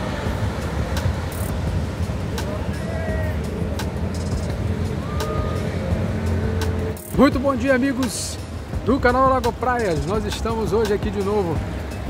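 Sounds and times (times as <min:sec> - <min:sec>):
surf rushing: 0:00.0 - 0:12.0
faint voices: 0:02.2 - 0:06.3.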